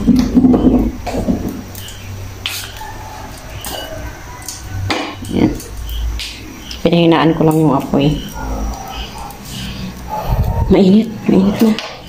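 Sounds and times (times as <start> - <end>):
low rumble of burner: 0.0 - 12.0.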